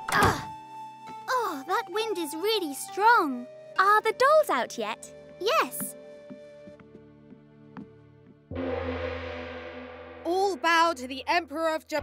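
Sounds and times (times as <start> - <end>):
soft background music: 0.0 - 12.0
gong ringing: 8.5 - 10.3.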